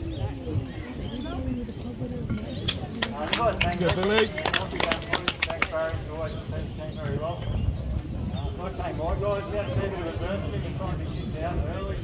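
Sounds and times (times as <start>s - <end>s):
people chattering: 0.0s - 12.0s
people clapping: 2.6s - 6.1s.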